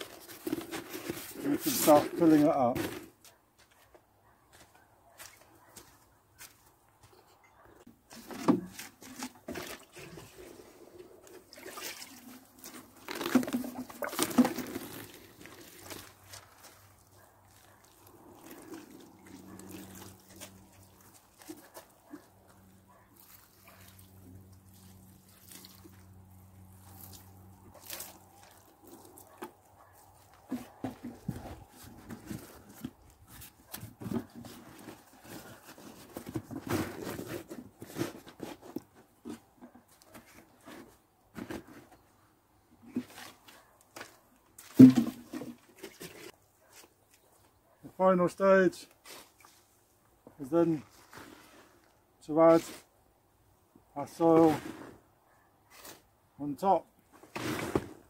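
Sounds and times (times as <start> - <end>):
knocks and clicks of cans: 44.7 - 46.1.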